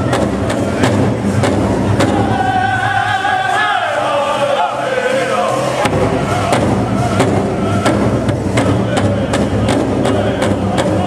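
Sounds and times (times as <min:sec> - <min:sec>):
big drum strokes: 0:00.0 - 0:11.0
high voices singing: 0:00.0 - 0:11.0.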